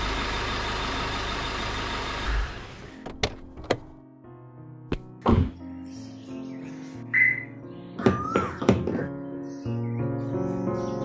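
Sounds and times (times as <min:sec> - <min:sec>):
car door latch clicking: 0:03.0 - 0:03.9
soft background music: 0:03.4 - 0:11.0.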